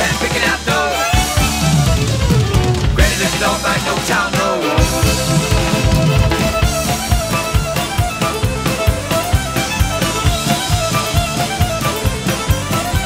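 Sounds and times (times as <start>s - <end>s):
drum kit kick and snare: 0.0s - 13.0s
fast electric violin runs: 0.0s - 13.0s.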